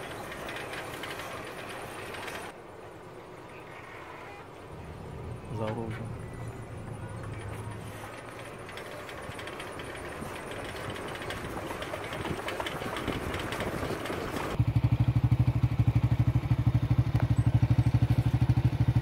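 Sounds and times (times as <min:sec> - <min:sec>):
small engine idling: 0:00.0 - 0:02.6, 0:05.5 - 0:19.0.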